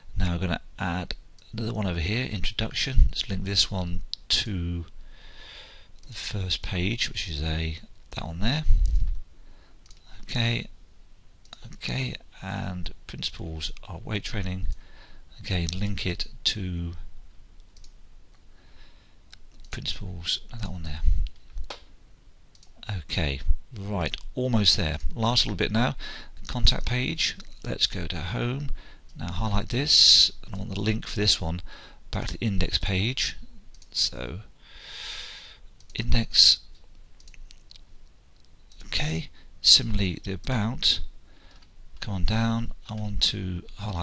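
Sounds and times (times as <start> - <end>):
low background noise: 0.0 - 44.0
computer mouse clicks: 17.6 - 18.0, 22.5 - 22.8, 33.7 - 33.9, 36.7 - 37.8
faint computer mouse clicks: 17.6 - 18.4.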